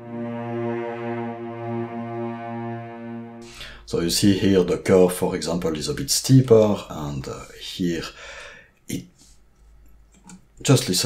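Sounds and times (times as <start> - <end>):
cello section legato line: 0.0 - 3.8.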